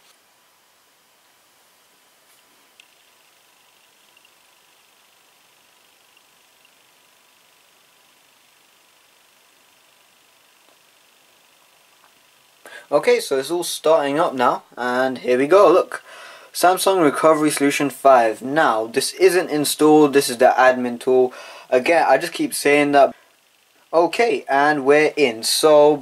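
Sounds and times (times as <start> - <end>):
faint room hiss: 0.0 - 26.0.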